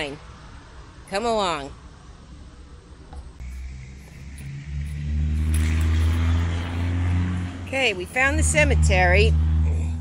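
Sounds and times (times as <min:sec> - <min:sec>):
vehicle engine running: 0:03.4 - 0:10.0.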